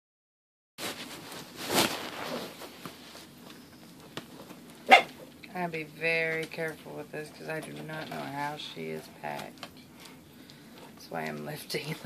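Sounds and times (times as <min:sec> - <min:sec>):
cardboard box rustling and scraping: 0:00.8 - 0:03.8.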